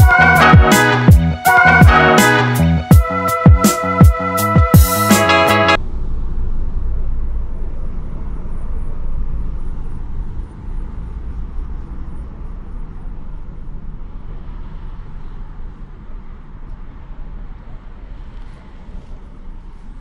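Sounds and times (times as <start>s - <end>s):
background music: 0.0s - 5.8s
low rumble: 5.8s - 20.0s.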